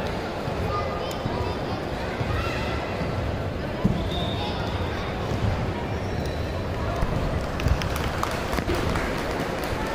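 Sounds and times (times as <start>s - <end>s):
indoor sports arena background: 0.0s - 9.9s.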